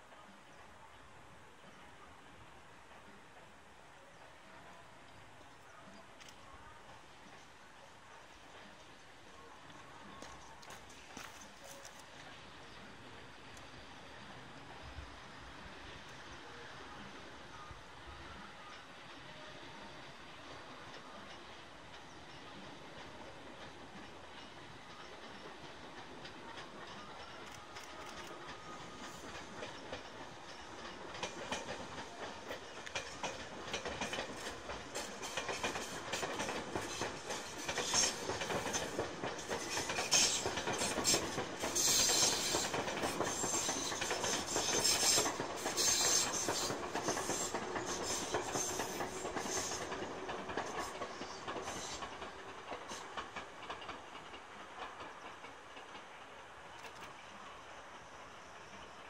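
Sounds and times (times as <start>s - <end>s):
electric train running past: 0.0s - 59.0s
wheels clacking over rail joints: 20.9s - 57.4s.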